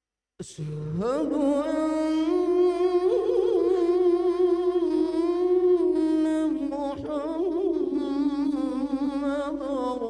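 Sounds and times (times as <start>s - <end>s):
man chanting: 0.4s - 10.0s.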